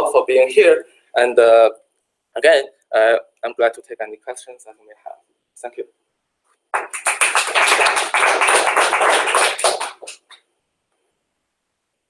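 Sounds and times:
audience applauding: 0:06.8 - 0:10.4.

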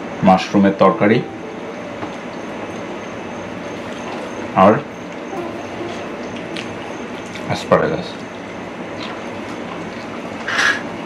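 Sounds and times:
rushing room noise: 0:00.0 - 0:09.0.

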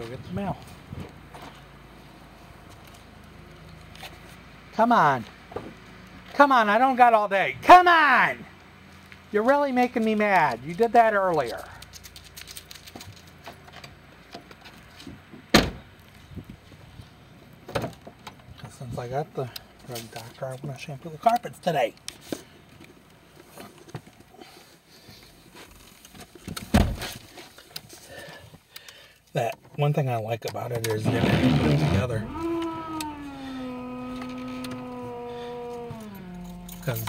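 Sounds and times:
car door slamming: 0:15.5 - 0:15.9, 0:26.7 - 0:27.2
vehicle reversing whine: 0:31.2 - 0:37.0.

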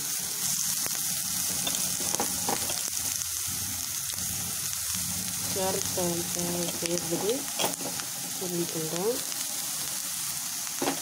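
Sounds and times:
carrot sizzling in a pan: 0:00.0 - 0:11.0.

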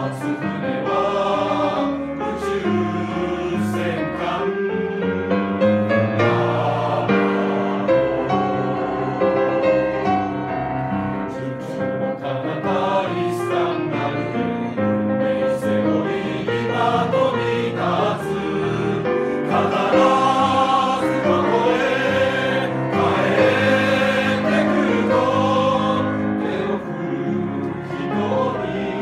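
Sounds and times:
mixed choir singing: 0:00.0 - 0:29.0.

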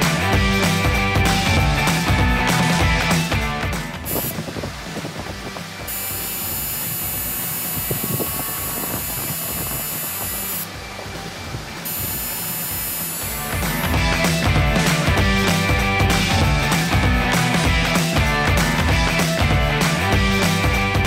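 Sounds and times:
background music: 0:00.0 - 0:07.7, 0:09.2 - 0:21.0
tattoo machine buzzing: 0:04.0 - 0:04.4, 0:05.9 - 0:10.7, 0:11.8 - 0:13.9.

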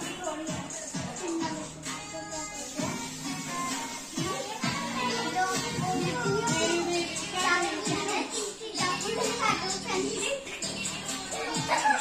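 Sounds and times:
background music: 0:00.0 - 0:12.0
children chattering and calling out: 0:00.0 - 0:12.0.

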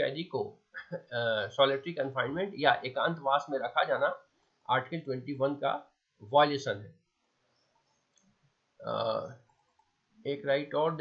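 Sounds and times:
faint clicks: 0:07.8 - 0:08.4
man's wordless vocal sound: 0:08.8 - 0:09.3.

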